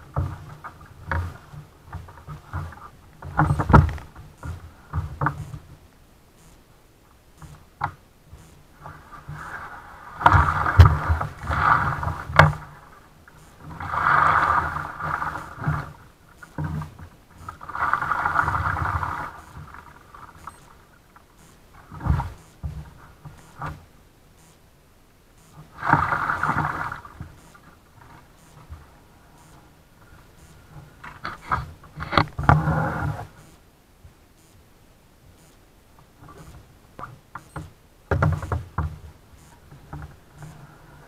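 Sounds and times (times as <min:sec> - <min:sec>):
kayak hull scraping on wood: 0:00.0 - 0:05.7, 0:07.4 - 0:23.9, 0:25.5 - 0:33.6, 0:37.4 - 0:41.0
paddle strokes in water: 0:00.0 - 0:05.8, 0:07.3 - 0:24.0, 0:25.4 - 0:33.6, 0:36.0 - 0:41.0.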